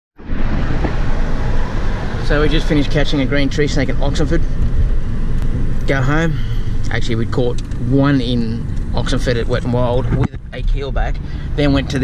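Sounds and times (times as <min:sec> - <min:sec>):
car road and engine rumble: 0:00.2 - 0:12.0.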